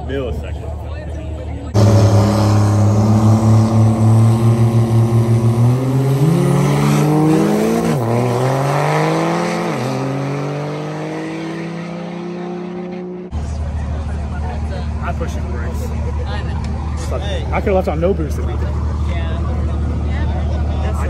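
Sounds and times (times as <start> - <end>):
diesel truck accelerating: 0.0 - 21.0.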